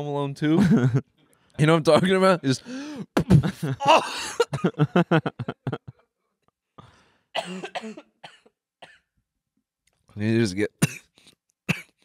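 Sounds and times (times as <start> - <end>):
man laughing: 0.6 - 1.0, 3.2 - 6.1
man coughing: 3.0 - 4.9, 7.4 - 9.1, 10.8 - 12.0.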